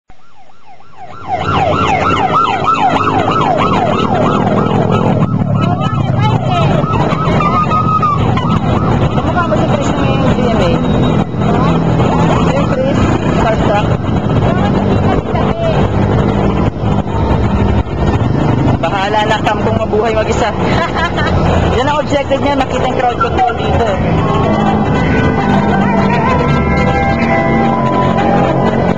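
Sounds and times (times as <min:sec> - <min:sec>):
sirens yelping: 0:00.1 - 0:28.9
motorcycle engines running: 0:01.1 - 0:28.9.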